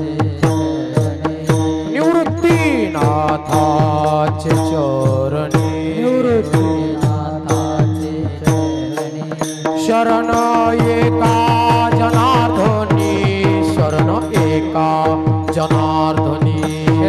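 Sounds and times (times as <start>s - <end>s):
drum: 0.0s - 17.0s.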